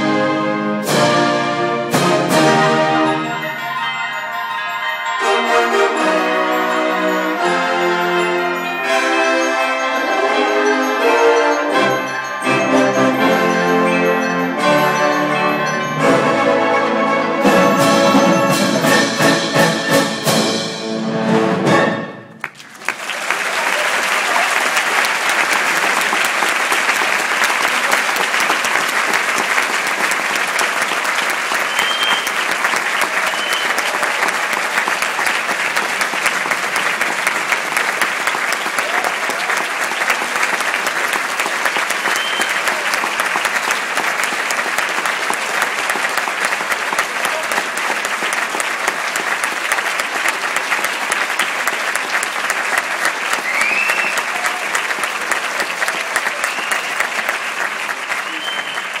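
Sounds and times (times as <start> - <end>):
audience applauding: 2.4 - 19.7, 22.3 - 59.0.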